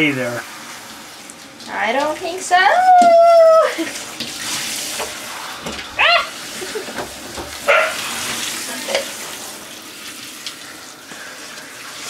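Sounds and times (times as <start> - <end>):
shower head spraying water: 0.0 - 12.0
cat meowing: 6.0 - 6.4.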